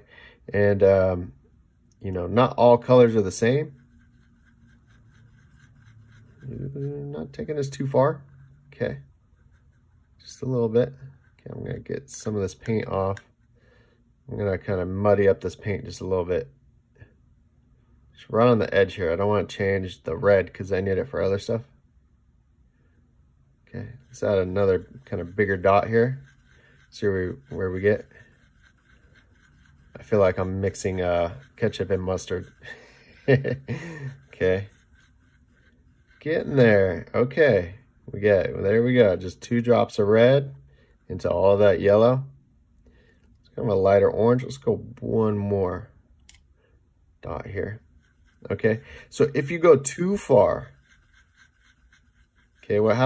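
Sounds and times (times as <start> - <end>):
paintbrush scraping in palette: 2.3 - 13.6, 23.6 - 37.7, 38.3 - 42.3, 47.2 - 53.0.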